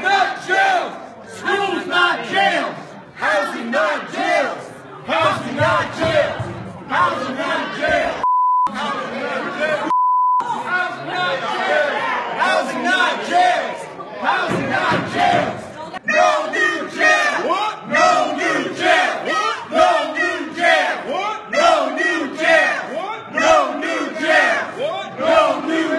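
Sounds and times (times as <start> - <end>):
crowd chanting slogans: 0.0 - 9.9, 10.6 - 25.9.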